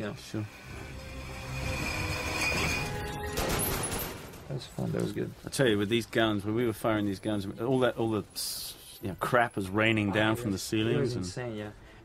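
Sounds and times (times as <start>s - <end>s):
film soundtrack music: 0.0s - 4.5s.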